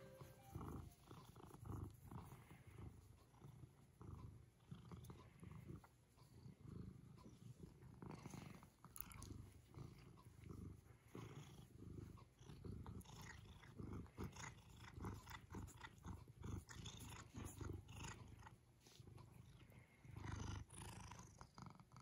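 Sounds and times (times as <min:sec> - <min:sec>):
cat purring: 0:00.0 - 0:22.0.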